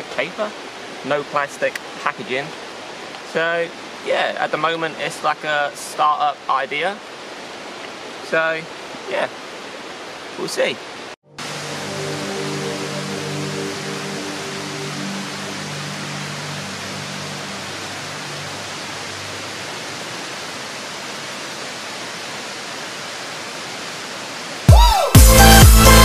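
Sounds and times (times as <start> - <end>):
river water flowing: 0.0 - 26.0
soft sustained musical tones: 11.2 - 19.6
loud electronic dance music: 24.7 - 26.0.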